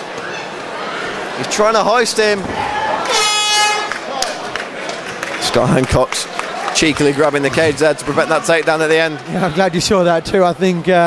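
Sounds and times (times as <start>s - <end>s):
horn steady tone: 3.1s - 4.0s.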